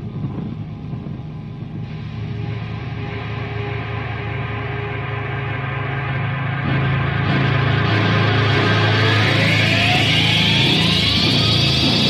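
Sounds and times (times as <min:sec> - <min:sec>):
distorted guitars: 0:00.0 - 0:12.0
tone rising in pitch: 0:02.5 - 0:12.0
indie rock music: 0:06.0 - 0:12.0.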